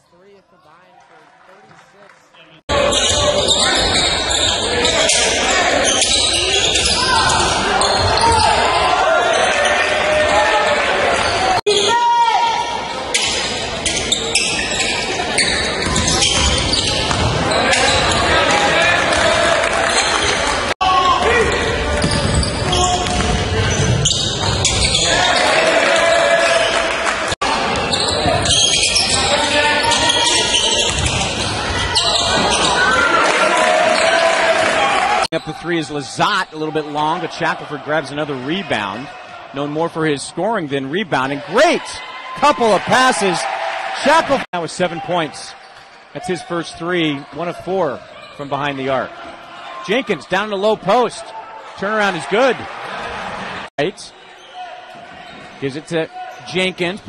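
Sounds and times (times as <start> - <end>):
voices echoing in gym: 0.0 - 57.0.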